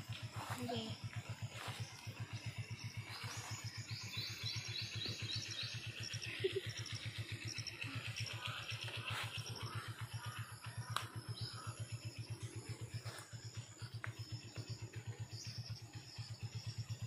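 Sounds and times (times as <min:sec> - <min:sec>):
low pulsing hum: 0:00.0 - 0:17.0
bird calling: 0:00.1 - 0:16.6.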